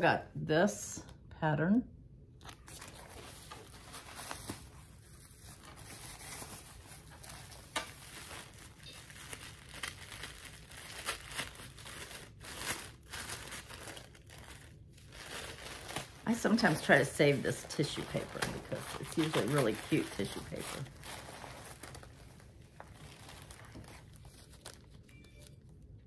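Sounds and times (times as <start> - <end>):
tissue paper crinkling: 2.4 - 25.8.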